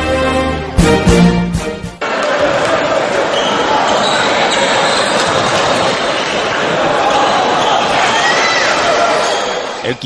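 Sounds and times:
crowd voices echoing: 2.0 - 10.0.

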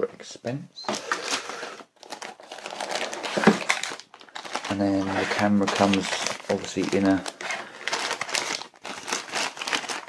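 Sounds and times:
plastic bag crinkling: 1.0 - 10.0.

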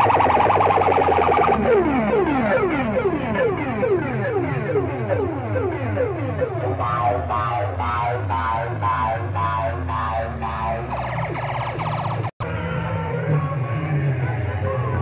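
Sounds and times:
fast electronic rattle: 0.0 - 2.8, 4.1 - 12.4
falling siren sweeps: 0.0 - 15.0
low bass drone: 0.0 - 15.0
warbling siren tone: 0.0 - 15.0.

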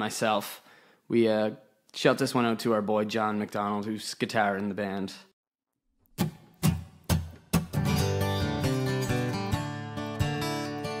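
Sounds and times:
guitar strumming: 6.2 - 11.0.

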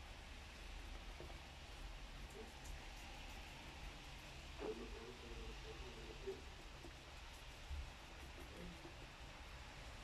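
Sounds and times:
guinea pig crunching food: 2.1 - 10.0.

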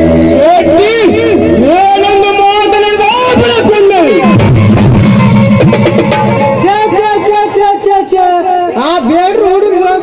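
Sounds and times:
man singing through loudspeakers: 0.0 - 4.4, 6.5 - 10.0
held instrumental notes: 0.0 - 9.0.

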